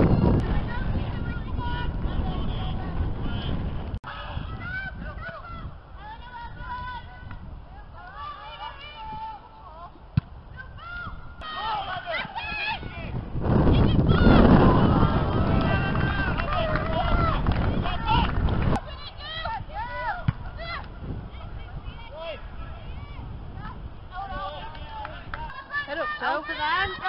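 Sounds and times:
wind rumble on microphone: 0.0 - 25.6
players shouting: 10.6 - 13.2.

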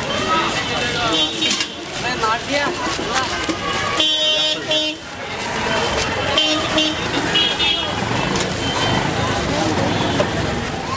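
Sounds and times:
street traffic: 0.0 - 10.9
voices: 0.0 - 10.9
vehicle horns tooting: 0.4 - 1.9, 3.9 - 5.1, 5.7 - 10.6.

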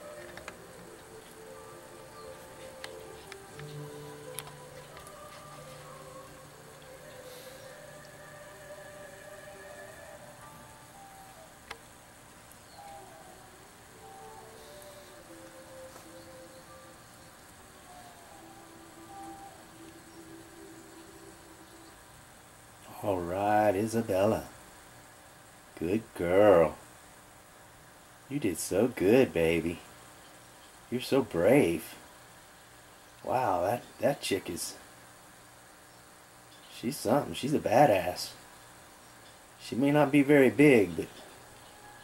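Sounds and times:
soft music of held notes: 0.0 - 42.0.

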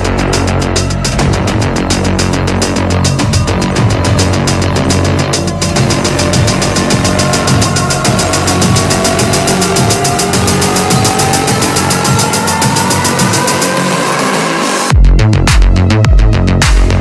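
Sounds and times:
rising synth tones: 0.0 - 14.9
dark electronic music: 0.0 - 17.0.

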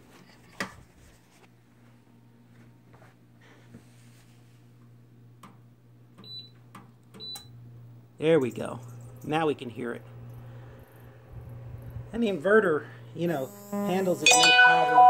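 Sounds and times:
faint low hum: 0.1 - 14.2
short high beeps: 13.8 - 15.0.

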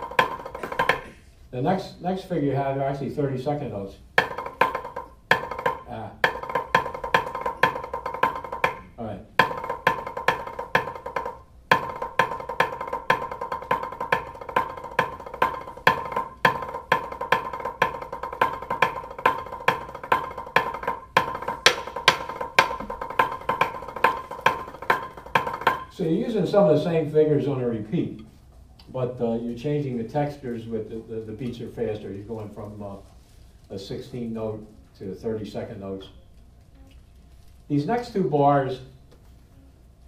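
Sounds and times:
drumsticks on a practice pad: 0.0 - 1.2, 4.2 - 26.0.

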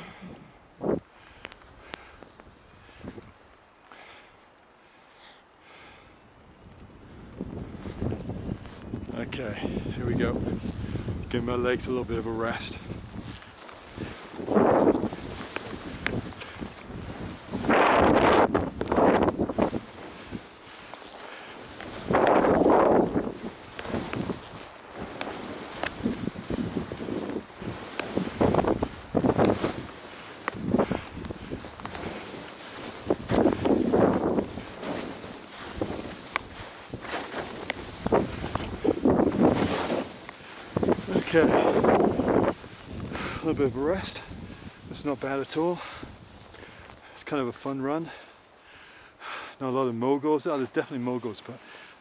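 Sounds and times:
wind buffeting microphone: 0.0 - 3.8, 6.2 - 48.2
skis swishing through snow: 7.5 - 48.9, 49.9 - 52.0.

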